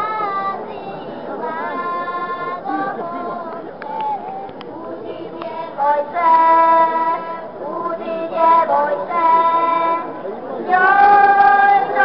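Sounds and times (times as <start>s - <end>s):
children singing together: 0.0s - 4.4s, 5.0s - 12.0s.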